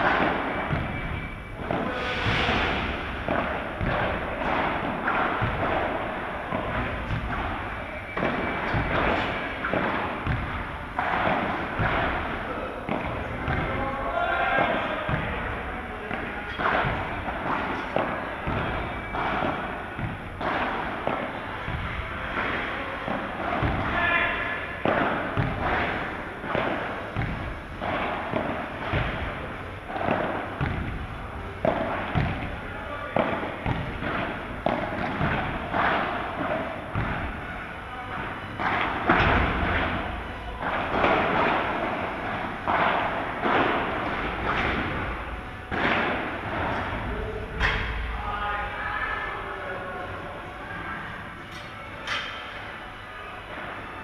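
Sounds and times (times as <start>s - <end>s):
balls bouncing off glass walls: 0.0s - 48.2s
balls hit with paddles: 0.0s - 48.8s, 51.5s - 52.6s
voices: 0.0s - 54.0s.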